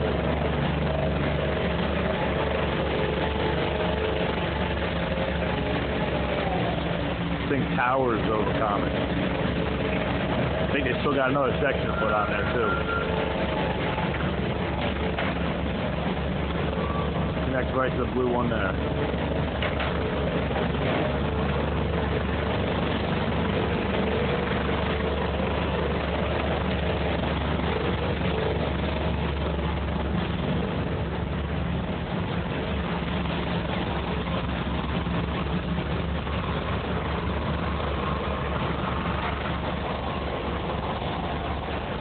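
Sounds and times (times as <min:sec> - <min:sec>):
engine idling: 0:00.0 - 0:42.0.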